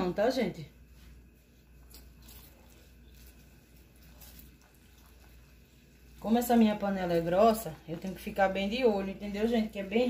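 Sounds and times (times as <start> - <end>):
syrup bubbling with small pops: 1.9 - 5.9.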